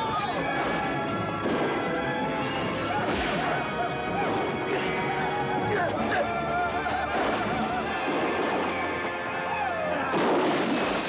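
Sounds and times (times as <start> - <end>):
film music: 0.0 - 11.0
horses galloping: 0.0 - 11.0
people yelling: 0.0 - 11.0.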